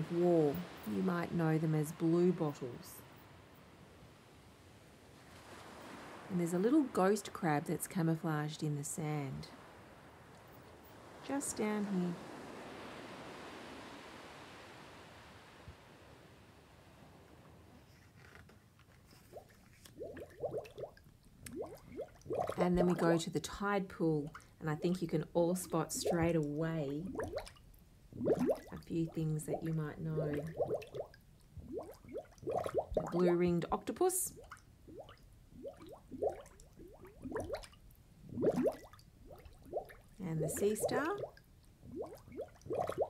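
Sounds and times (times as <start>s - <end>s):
page turning rustle: 17.8s - 20.0s
water drip plops: 19.4s - 22.9s, 26.0s - 33.3s, 34.3s - 43.0s.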